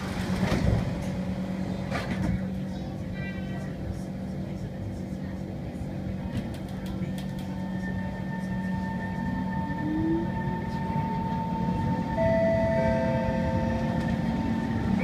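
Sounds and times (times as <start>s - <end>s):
train traction motors whining: 6.7s - 15.0s
brief tone: 9.7s - 14.1s.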